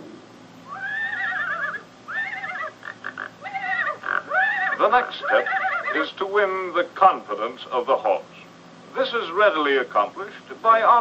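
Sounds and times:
cartoon horse whinnying: 0.7s - 6.0s.

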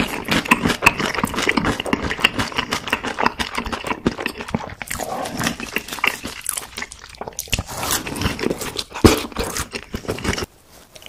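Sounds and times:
chewing crispy chicken: 0.0s - 11.0s.

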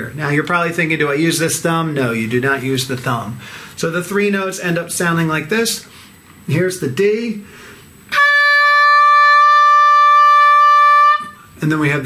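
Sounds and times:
oboe playing long note: 8.1s - 11.5s.

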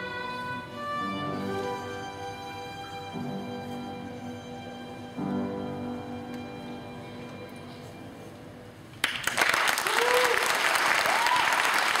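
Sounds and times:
violin and piano note: 0.0s - 8.8s
audience applause: 9.0s - 12.0s
voices cheering: 9.8s - 12.0s.

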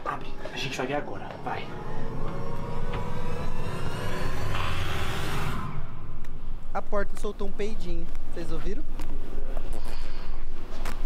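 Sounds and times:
low rumble: 1.0s - 7.2s.

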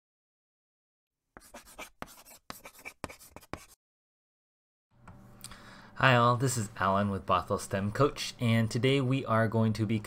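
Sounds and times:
chalk scratching on blackboard: 1.4s - 3.8s.

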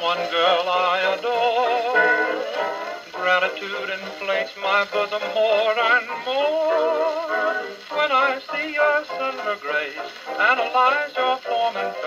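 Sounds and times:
gramophone playing band music: 1.7s - 4.5s.

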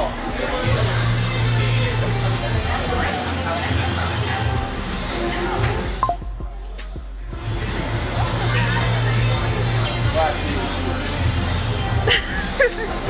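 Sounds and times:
background music with bass line: 0.0s - 13.0s
voices talking indistinctly: 0.0s - 13.0s.

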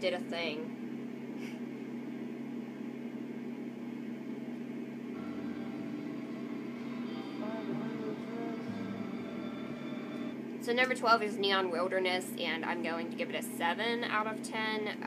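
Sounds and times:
steady low hum: 0.0s - 15.0s
faint music: 5.2s - 11.5s.

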